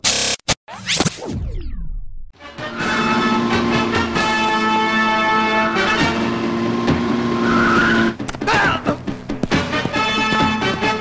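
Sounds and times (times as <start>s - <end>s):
engine and road rumble: 2.4s - 11.0s
tyres skidding and squealing: 2.5s - 11.0s.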